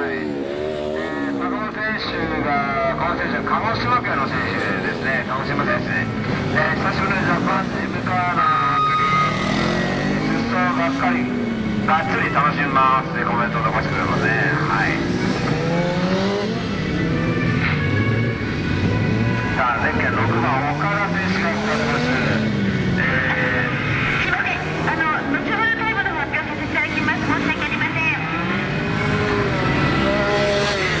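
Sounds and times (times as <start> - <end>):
motorcycle engine revving: 0.0 - 31.0.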